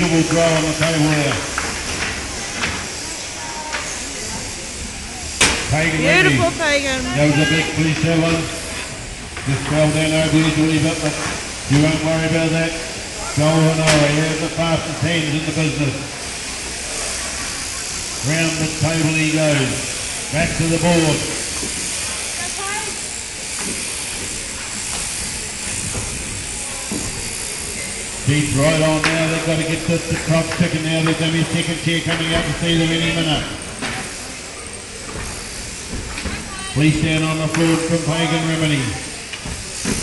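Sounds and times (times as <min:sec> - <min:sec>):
electric shearing machines hissing: 0:00.0 - 0:40.0.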